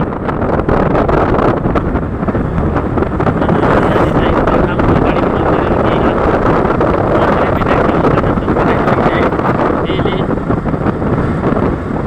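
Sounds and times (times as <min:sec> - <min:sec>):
motorcycle engine running: 0:00.0 - 0:12.0
wind rushing over microphone: 0:00.0 - 0:12.0.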